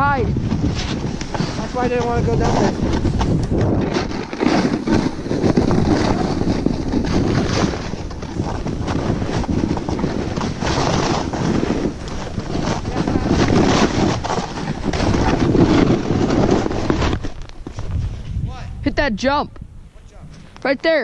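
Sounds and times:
snowboard scraping through snow: 0.0 - 18.7
wind rushing over microphone: 0.0 - 21.0.

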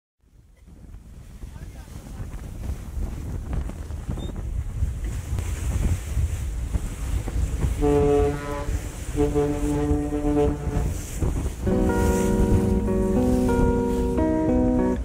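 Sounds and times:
water churning along hull: 0.2 - 15.0
wind buffeting microphone: 0.2 - 15.0
steady pitched tone: 7.8 - 15.0.

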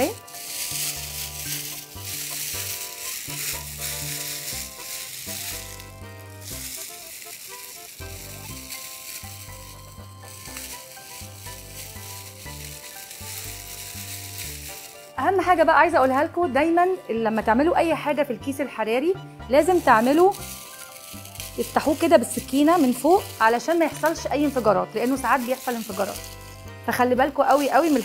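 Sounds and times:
plastic bag crinkling: 0.0 - 15.6, 19.6 - 28.0.

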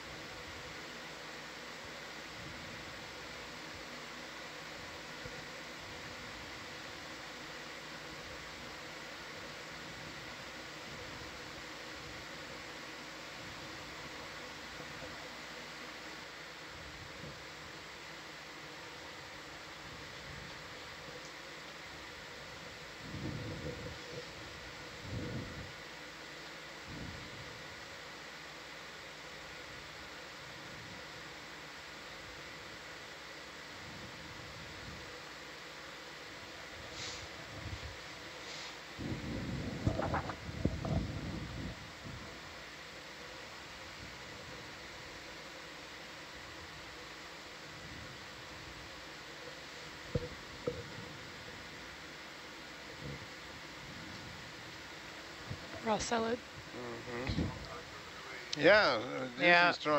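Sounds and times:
faint electrical hum: 0.0 - 59.9
steady background hiss: 0.0 - 59.9.

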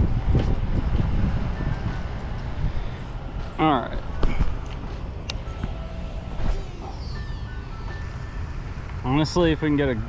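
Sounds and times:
wind rumbling on microphone: 0.0 - 6.9
faint high whine: 2.8 - 10.0.

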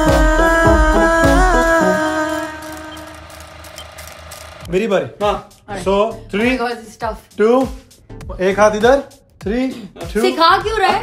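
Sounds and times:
man's voice: 4.7 - 6.5, 7.4 - 10.4.

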